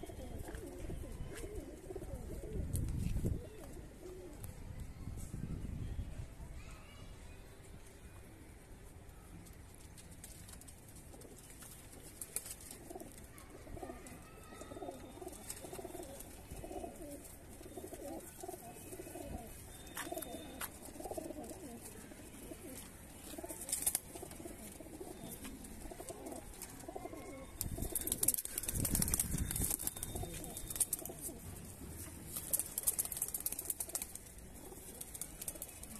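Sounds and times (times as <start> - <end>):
pigeons cooing: 0.0 - 2.7, 12.7 - 31.5
rustling noise: 0.3 - 3.8.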